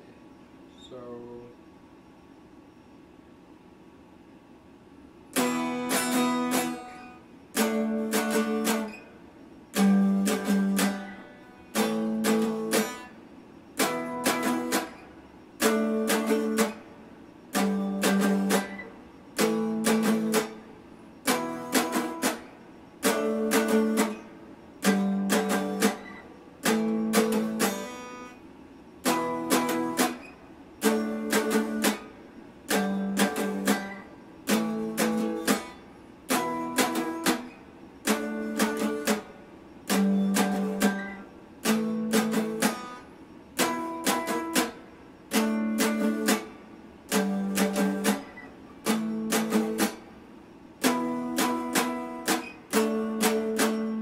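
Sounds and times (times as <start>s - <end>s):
electric guitar strumming chords: 5.3s - 9.1s, 9.7s - 28.4s, 29.0s - 50.2s, 50.8s - 54.0s.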